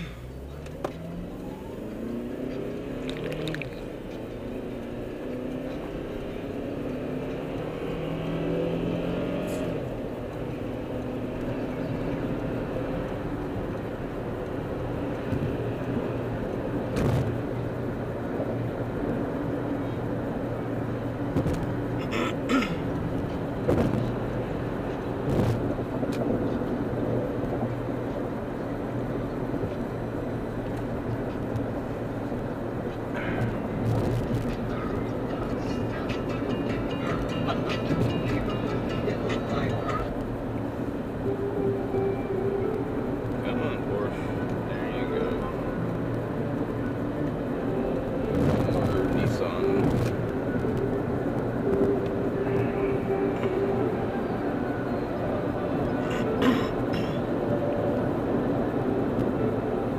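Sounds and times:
car engine accelerating: 0.0s - 59.9s
road noise inside car: 0.0s - 59.9s.

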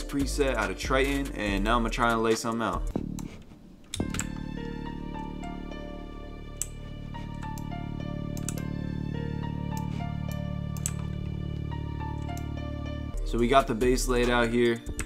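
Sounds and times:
descending piano pattern: 3.9s - 15.0s
strings: 3.9s - 15.0s.

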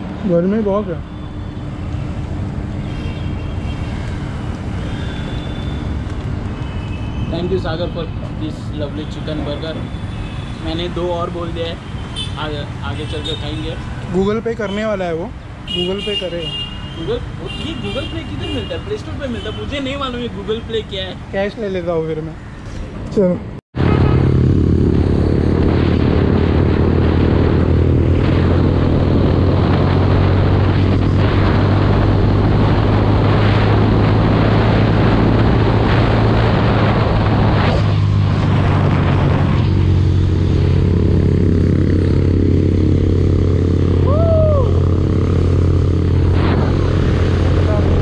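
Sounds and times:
motorcycle engine drone: 23.8s - 48.0s.

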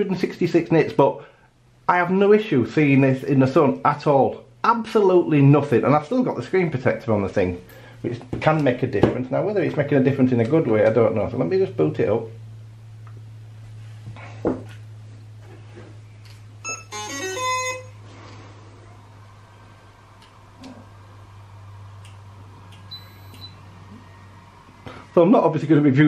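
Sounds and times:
electronic start-up tune beeps: 16.6s - 18.0s.

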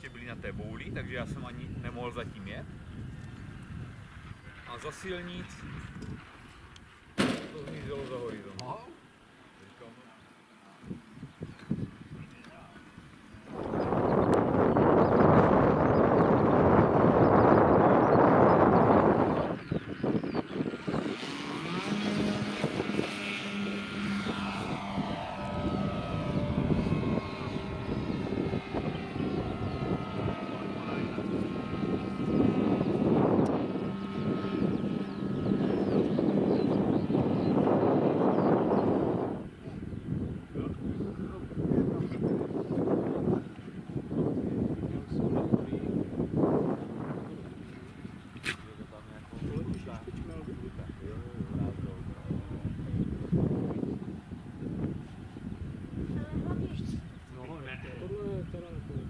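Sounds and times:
propeller rush: 0.0s - 59.0s
model plane electric motor whine: 17.2s - 39.5s.

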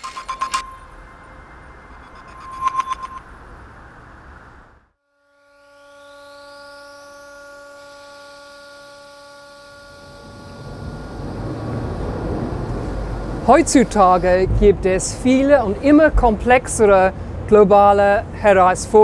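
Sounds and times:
high whine rising in pitch: 0.0s - 14.4s
electric machinery hum: 0.0s - 19.0s
low street rumble: 0.6s - 2.4s, 3.1s - 5.0s, 9.9s - 19.0s.

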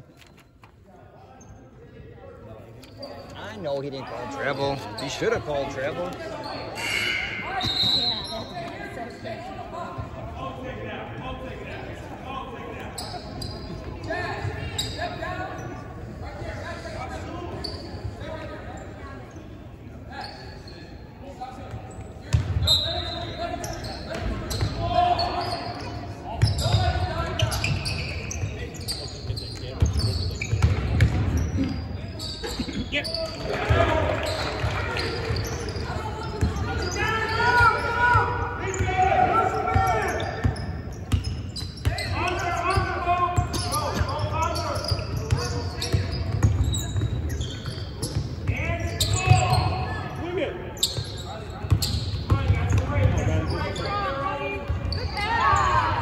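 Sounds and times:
basketball bouncing on wooden court: 29.8s - 31.6s, 45.2s - 48.6s.

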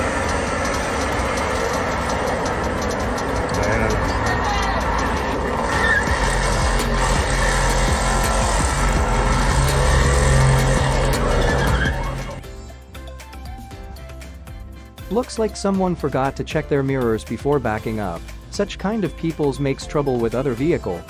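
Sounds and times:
car engine revving hard: 0.0s - 12.4s
wheels spinning on road: 0.0s - 12.4s.

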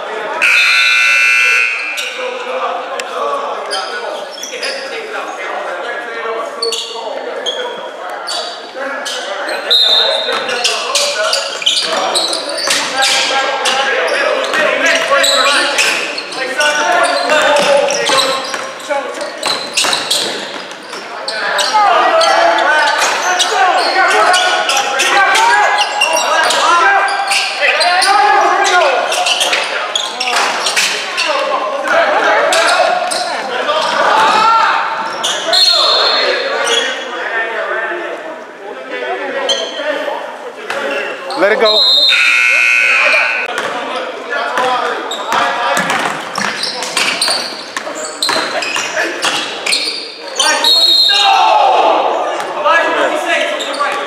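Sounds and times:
people shouting and chattering: 0.0s - 54.0s.

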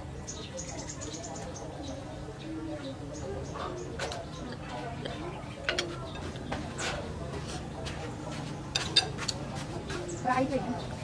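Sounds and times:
cutlery clinking on ceramic bowl: 8.7s - 9.4s.

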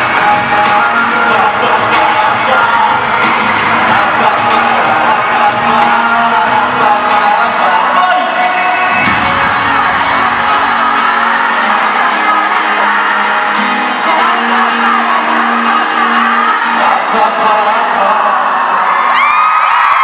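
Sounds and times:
crowd screaming and cheering: 0.0s - 20.0s
live pop music: 0.0s - 20.0s
shrill screams: 18.5s - 20.0s.

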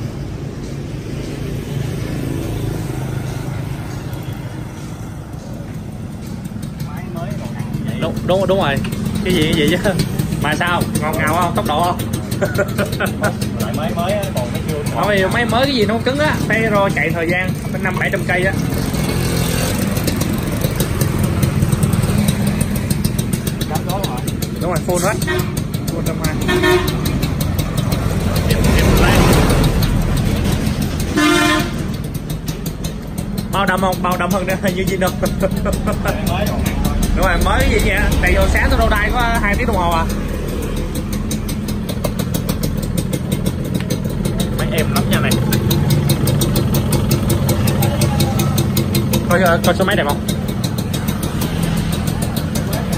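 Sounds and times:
two-stroke motorcycle engine running: 0.0s - 52.9s.

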